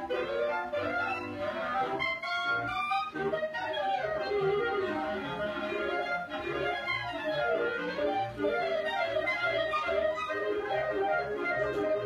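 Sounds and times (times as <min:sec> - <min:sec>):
clarinet choir playing: 0:00.0 - 0:12.0.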